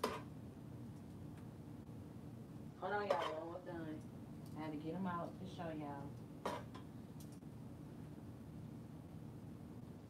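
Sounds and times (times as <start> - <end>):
woman's voice: 2.8 - 4.0, 4.6 - 6.1.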